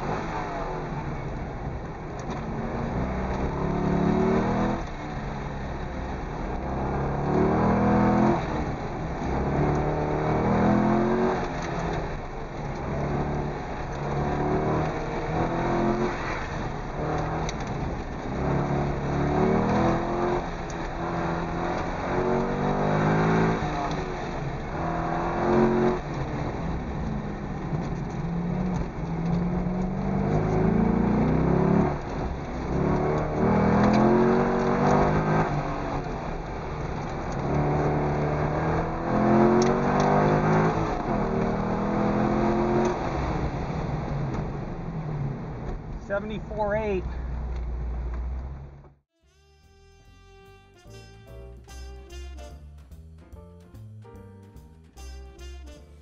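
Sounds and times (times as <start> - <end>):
car engine revving: 0.0 - 49.0.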